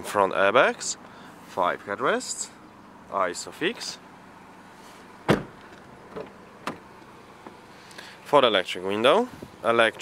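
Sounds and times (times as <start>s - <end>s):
car door shutting thump: 5.2s - 7.6s.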